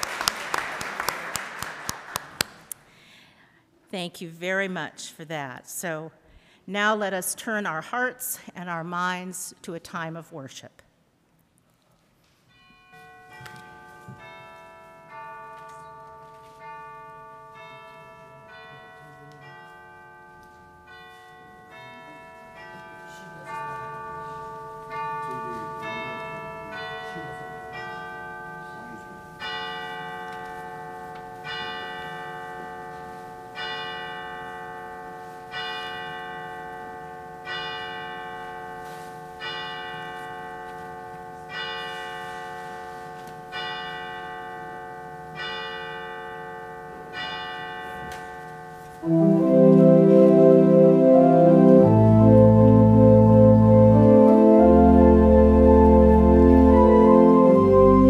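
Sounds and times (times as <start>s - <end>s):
church chime tune: 12.4s - 58.0s.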